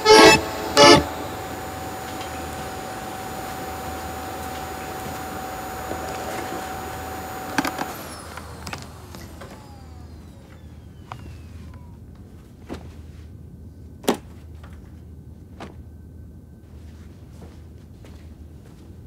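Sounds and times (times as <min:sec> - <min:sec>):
vacuum cleaner switch click: 0:00.0 - 0:11.4
vacuum cleaner motor whine: 0:00.0 - 0:12.3.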